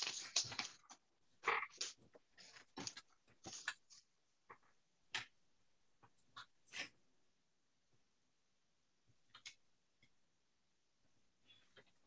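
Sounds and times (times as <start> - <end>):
paper rustling on felt: 0.0 - 1.0.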